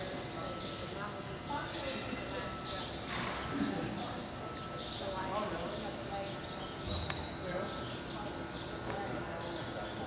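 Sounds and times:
people talking: 0.0s - 4.4s, 5.0s - 10.0s.

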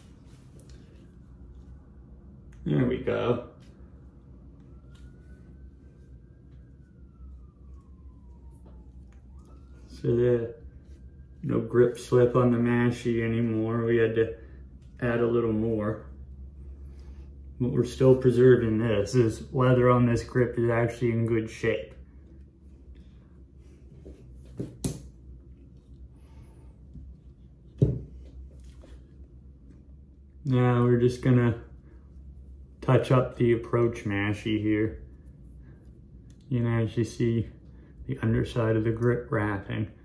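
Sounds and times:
low steady hum: 0.0s - 40.0s.

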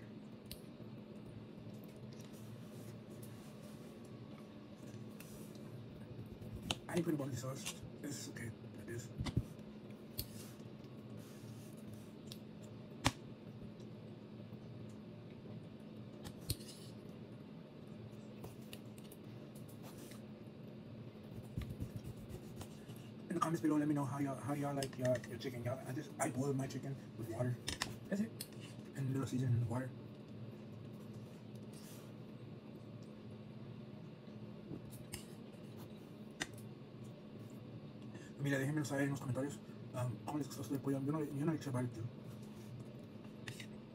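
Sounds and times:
steady low hum: 0.0s - 43.9s.

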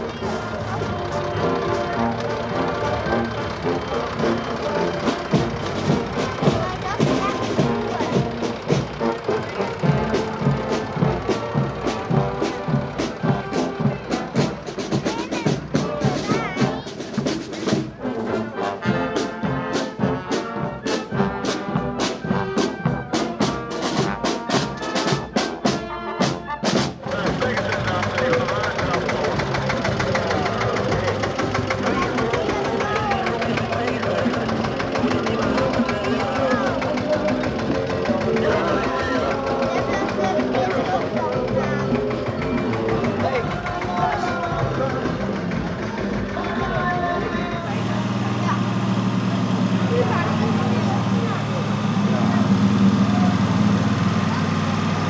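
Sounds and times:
marching band playing: 0.0s - 55.0s
snare drums beating: 0.0s - 55.0s.

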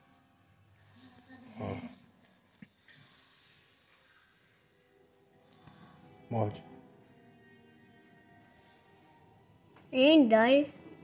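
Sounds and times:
child breathing softly: 2.8s - 6.2s.

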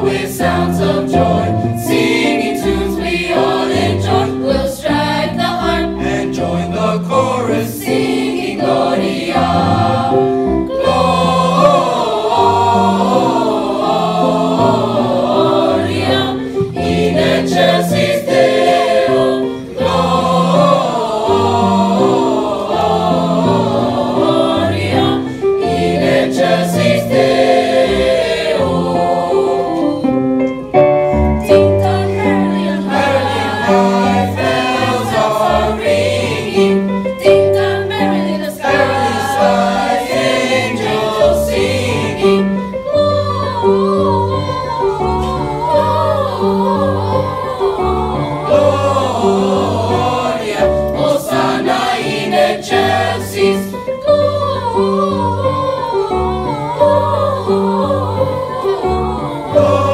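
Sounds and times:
choir singing sustained notes: 0.0s - 30.3s, 31.1s - 59.9s.

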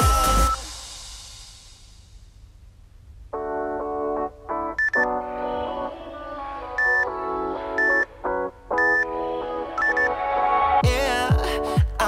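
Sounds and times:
background pop music: 0.0s - 0.8s, 4.8s - 12.0s
timer countdown beeps: 4.8s - 5.2s, 6.8s - 7.2s, 7.8s - 8.1s, 8.8s - 9.1s, 9.8s - 10.1s.

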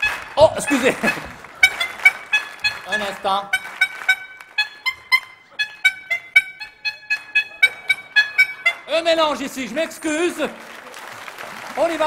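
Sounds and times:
squeeze horns playing a tune: 0.0s - 9.2s.

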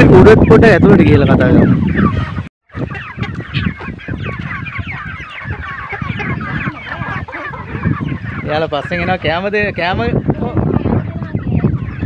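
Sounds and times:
chickens clucking and calling: 0.0s - 12.0s.

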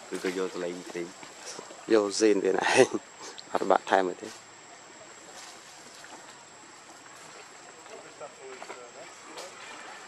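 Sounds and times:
faint distant voices: 0.0s - 10.0s
outdoor hiss: 0.0s - 10.0s.

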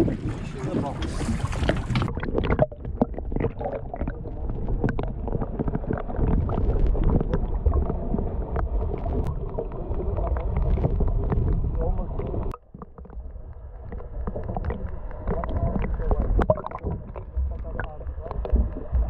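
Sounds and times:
underwater rumble and gurgling: 0.0s - 19.0s.

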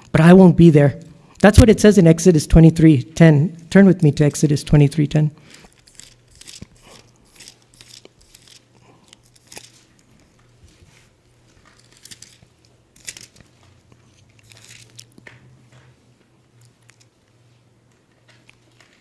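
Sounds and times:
thin paper pages rustling: 5.5s - 15.2s.

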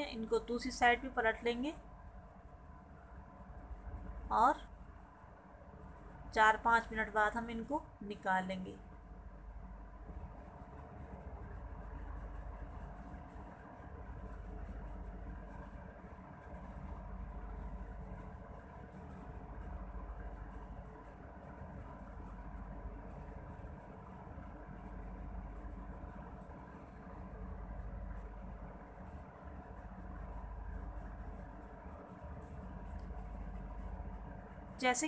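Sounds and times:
faint steady tones: 0.0s - 35.0s
steady low hum: 0.0s - 35.0s.

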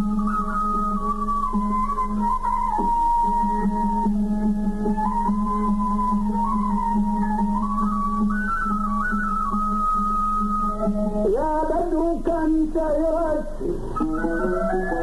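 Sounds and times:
sustained melodic instrument: 0.0s - 15.0s
person singing: 11.2s - 15.0s.

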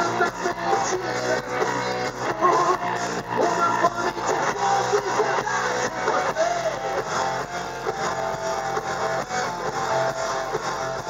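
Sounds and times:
drum kit playing: 0.0s - 11.0s
electric guitar riff: 0.0s - 11.0s.

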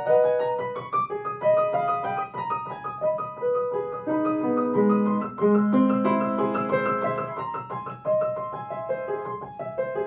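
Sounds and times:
solo classical piano: 0.0s - 10.0s.

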